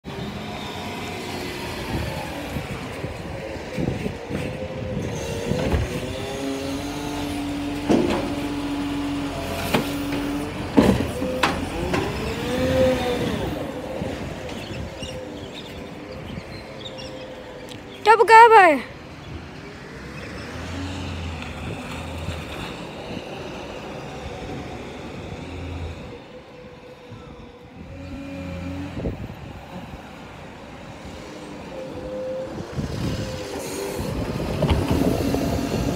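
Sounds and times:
garbage truck diesel engine: 0.0s - 35.9s
steady hydraulic arm whine: 20.8s - 35.9s.

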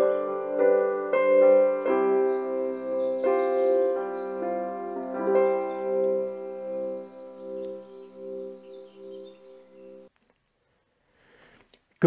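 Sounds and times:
held keyboard chord: 0.0s - 10.1s.

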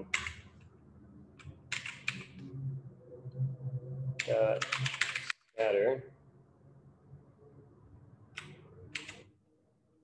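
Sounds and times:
keyboard keystroke clicks: 4.6s - 5.3s, 8.4s - 9.3s.

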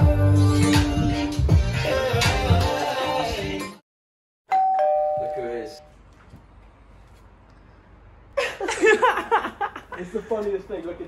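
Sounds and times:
doorbell ding-dong chime: 4.5s - 5.9s.

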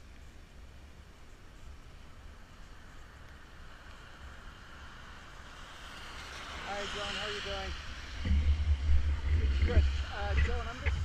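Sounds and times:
tyres hissing on wet road: 2.0s - 11.0s.

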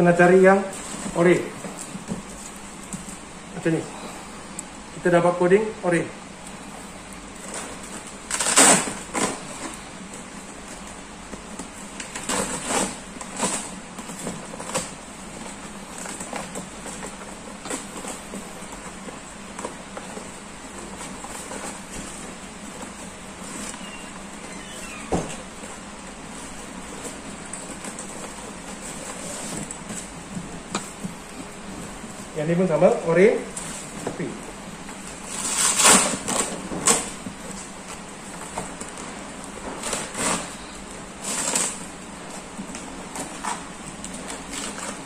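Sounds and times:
fabric and foil rustling: 6.8s - 45.0s.

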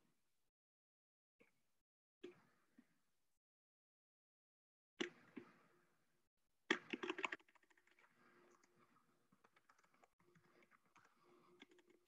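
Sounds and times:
typing on computer keyboard: 6.7s - 8.8s, 9.4s - 12.0s.

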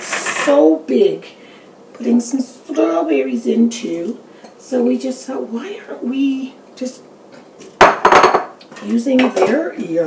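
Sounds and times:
dishes and utensils clattering: 0.0s - 0.6s, 7.8s - 9.7s.

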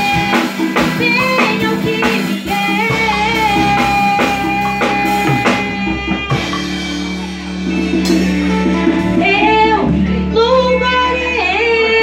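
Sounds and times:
woman singing into a microphone: 0.0s - 6.8s, 9.2s - 12.0s
live band: 0.0s - 12.0s
low bass: 0.0s - 12.0s.

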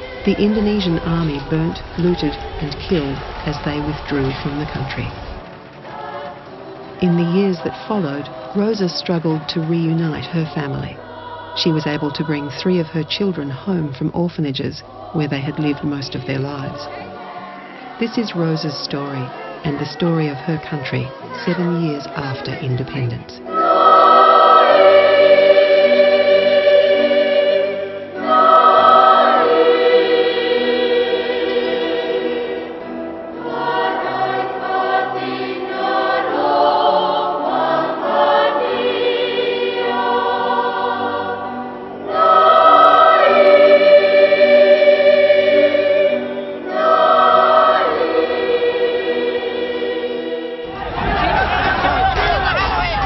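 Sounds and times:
choir singing held chords: 0.0s - 53.0s.

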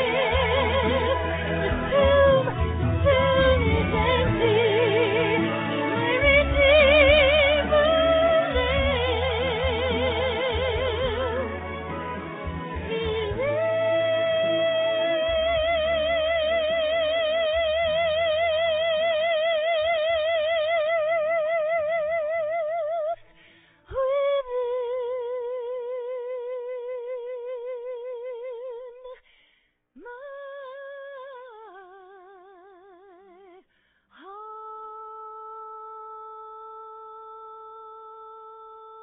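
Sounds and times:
low accompaniment: 0.0s - 22.0s
woman singing with vibrato: 0.0s - 23.3s, 23.9s - 29.2s, 30.0s - 39.0s.

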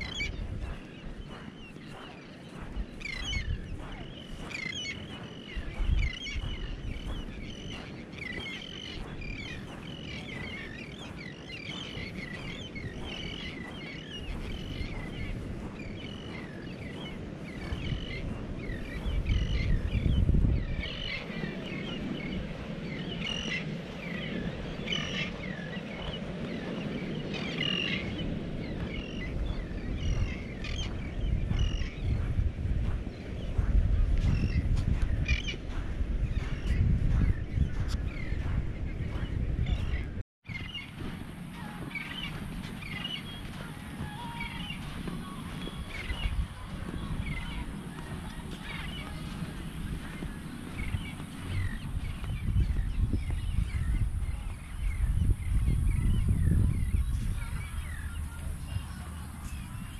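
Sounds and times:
birds chirping: 0.0s - 59.9s
wind buffeting microphone: 0.0s - 59.9s.

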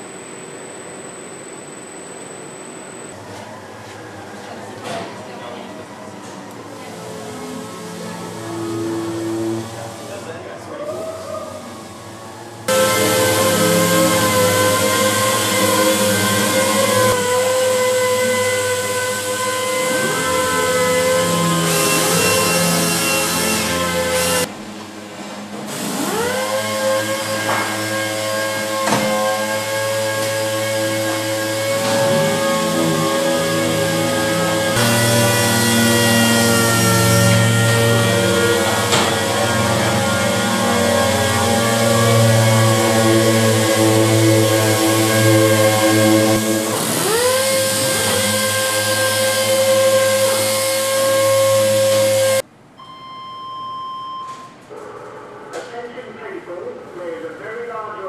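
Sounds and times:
pneumatic sanders whining: 6.2s - 11.0s, 11.6s - 52.5s.

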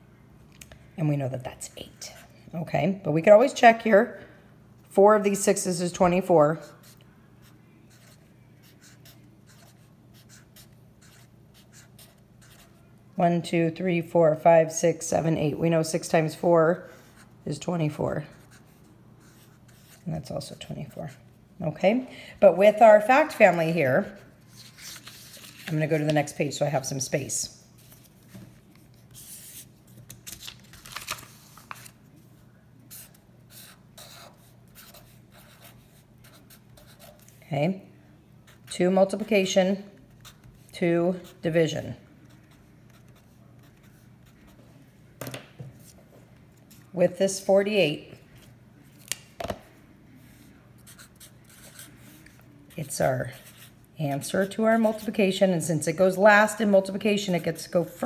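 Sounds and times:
marker pen scratching on paper: 6.2s - 12.8s, 18.2s - 20.1s, 29.0s - 29.7s, 32.9s - 37.4s, 38.5s - 44.6s, 50.3s - 55.4s.

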